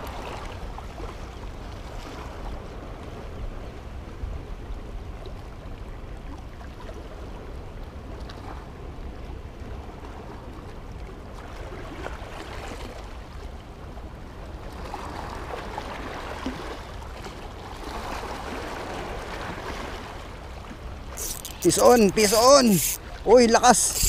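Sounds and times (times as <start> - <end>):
choppy sea water: 0.0 - 24.0.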